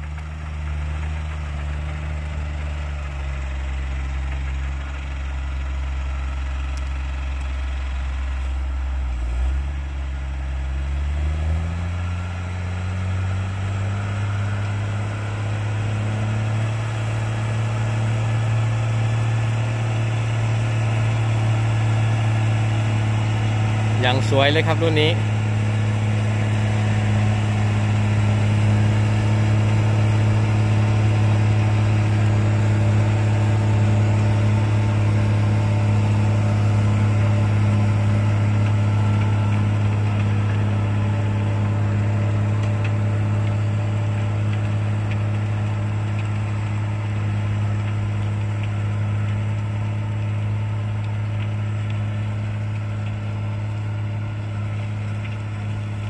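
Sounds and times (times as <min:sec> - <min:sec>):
tractor engine droning: 0:00.0 - 0:56.0.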